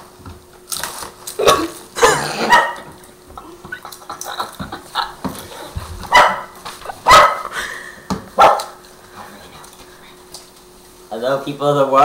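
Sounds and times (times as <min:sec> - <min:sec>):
dog barking: 0:02.4 - 0:02.9, 0:06.1 - 0:07.5, 0:08.4 - 0:08.8.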